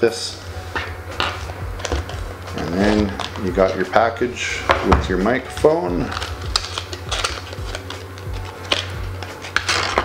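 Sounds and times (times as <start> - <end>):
soft background music: 0.0 - 10.0
packaging rustling and clicking: 0.7 - 4.0, 4.6 - 10.0.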